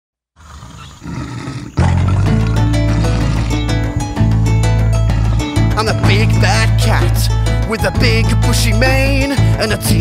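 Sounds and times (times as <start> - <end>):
lion roaring: 0.4 - 3.8, 5.0 - 5.7
loud backing music: 1.9 - 10.0.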